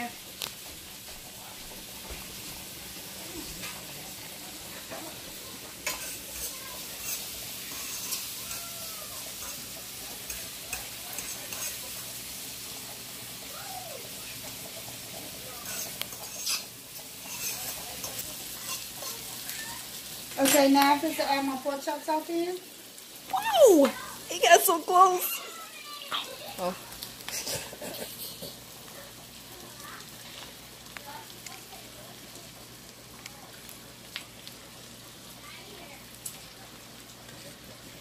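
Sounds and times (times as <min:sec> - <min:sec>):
onions sizzling in a skillet: 0:00.0 - 0:38.0
metal spoon scraping a pan: 0:05.8 - 0:12.0, 0:15.6 - 0:19.5.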